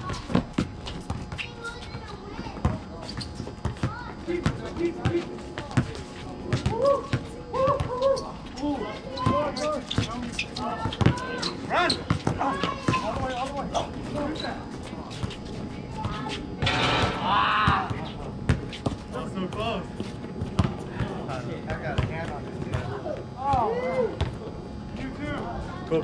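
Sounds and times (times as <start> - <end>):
basketball bouncing on hard court: 2.6 - 5.9, 10.8 - 11.3, 20.4 - 20.8, 21.7 - 22.9
players calling out: 16.6 - 18.4.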